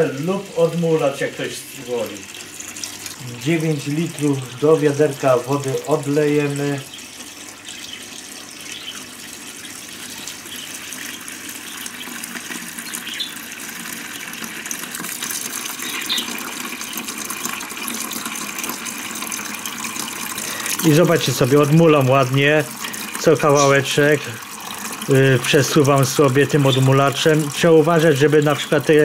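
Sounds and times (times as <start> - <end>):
water running into a bucket: 0.0 - 29.0.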